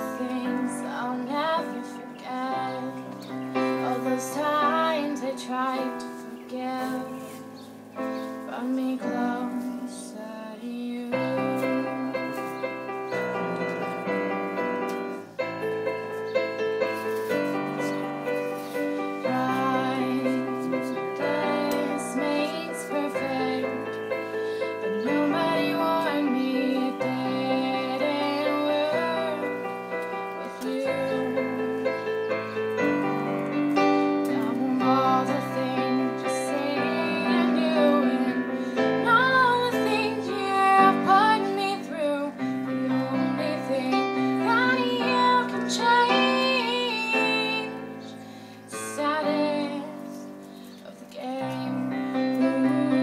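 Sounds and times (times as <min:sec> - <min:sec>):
woman singing: 0:00.0 - 0:14.2, 0:17.4 - 0:53.0
electric keyboard piano chords: 0:00.0 - 0:53.0.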